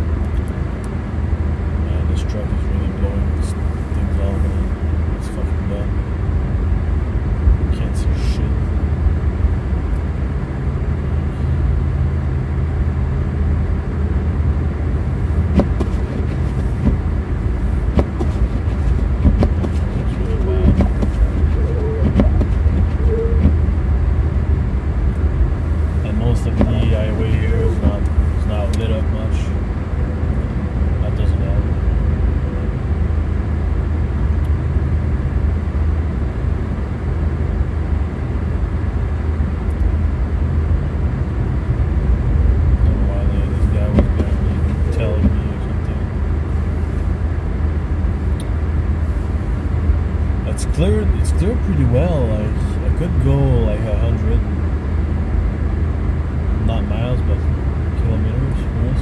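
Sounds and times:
car interior road and engine drone: 0.0s - 59.0s.

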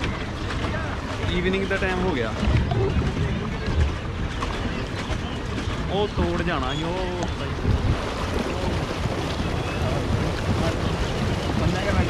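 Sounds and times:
lake water washing around boat: 0.0s - 12.0s
wind buffeting microphone: 0.0s - 12.0s.

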